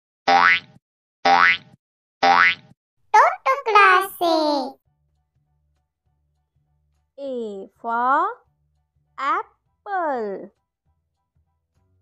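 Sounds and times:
person speaking: 0:03.2 - 0:04.7.

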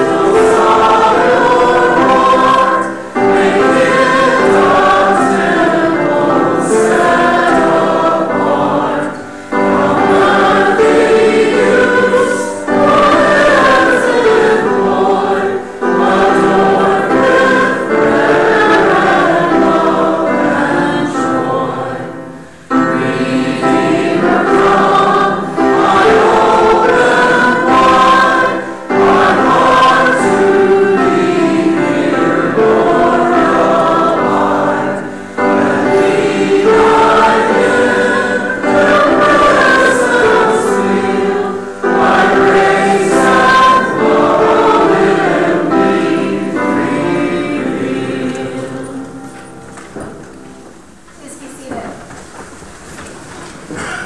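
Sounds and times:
choir and congregation singing hymn: 0:00.0 - 0:54.0.

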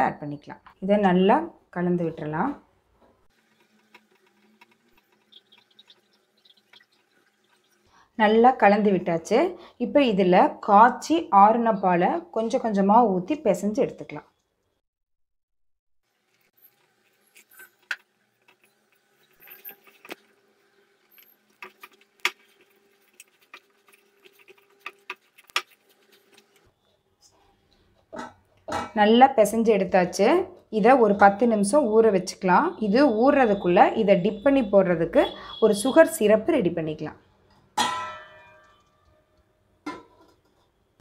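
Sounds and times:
hand kneading dough: 0:21.0 - 0:28.0
metal clank: 0:37.6 - 0:38.8
metal vessel ringing: 0:37.8 - 0:38.9.

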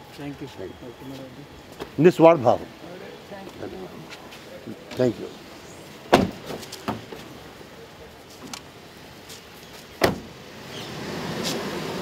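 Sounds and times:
car door slamming: 0:06.1 - 0:07.3, 0:10.0 - 0:10.4.

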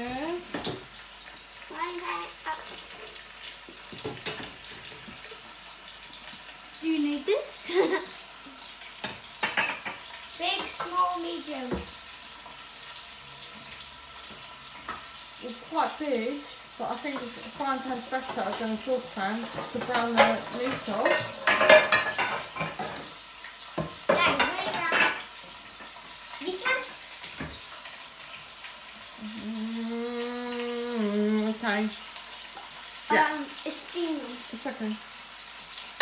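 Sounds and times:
meat sizzling in hot oil: 0:00.0 - 0:36.0
metal pots and pans clattering: 0:03.9 - 0:05.3, 0:09.0 - 0:11.0, 0:19.4 - 0:26.0.

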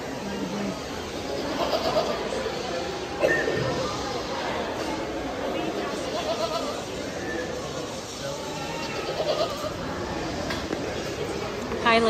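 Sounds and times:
people talking: 0:00.0 - 0:12.0
goats bleating: 0:01.4 - 0:02.3.

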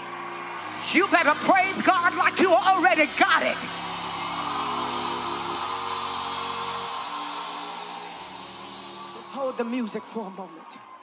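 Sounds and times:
organ sustained chords: 0:00.0 - 0:10.0
congregation noise: 0:00.0 - 0:11.0.

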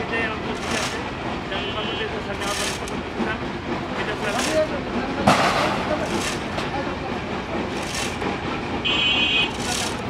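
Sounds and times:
diesel engine running: 0:00.0 - 0:10.0.

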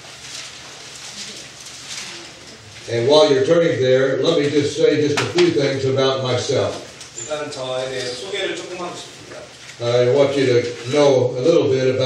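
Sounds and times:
book pages being turned: 0:00.0 - 0:02.8.

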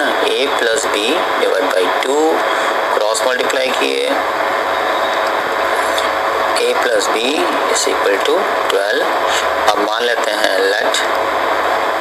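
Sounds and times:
person speaking: 0:00.0 - 0:04.2, 0:05.7 - 0:11.2
recording hiss: 0:00.0 - 0:12.0.

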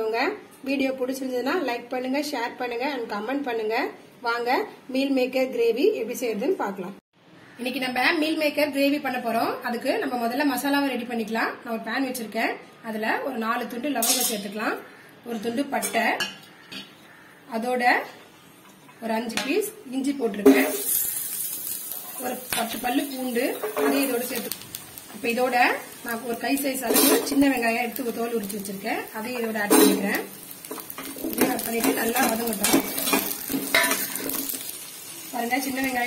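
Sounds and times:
light sizzle of frying: 0:13.1 - 0:36.0
spoon scraping and clinking on pan: 0:20.5 - 0:22.6, 0:23.5 - 0:24.3, 0:26.8 - 0:27.6, 0:29.7 - 0:34.7
cinnamon stick clinking on metal pan: 0:30.7 - 0:34.3.

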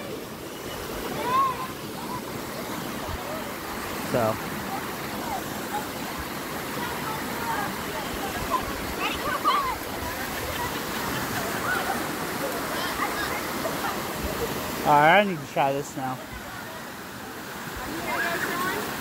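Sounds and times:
creek water rushing over rocks: 0:00.0 - 0:19.0.

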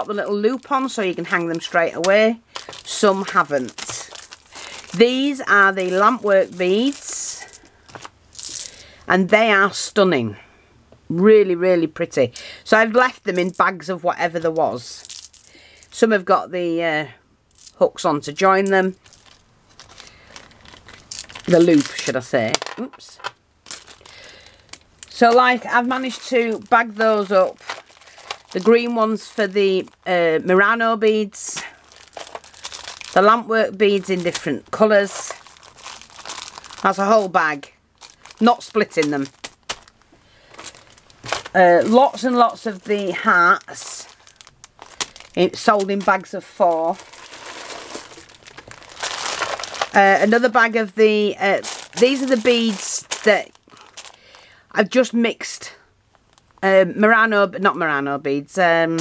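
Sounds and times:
plastic bag crinkling: 0:00.0 - 0:09.0, 0:14.2 - 0:16.0, 0:17.5 - 0:54.7, 0:56.1 - 0:56.6.

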